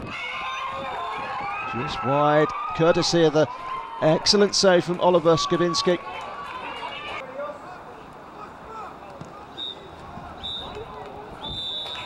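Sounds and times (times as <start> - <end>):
faint shouting voices: 0.0 - 12.0
referee's whistle blasts: 9.5 - 10.8, 11.4 - 12.0.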